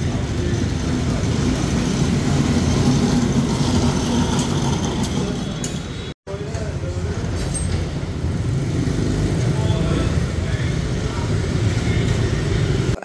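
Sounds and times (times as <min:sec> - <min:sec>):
motorbikes passing: 0:00.0 - 0:13.0
road noise: 0:00.0 - 0:13.0.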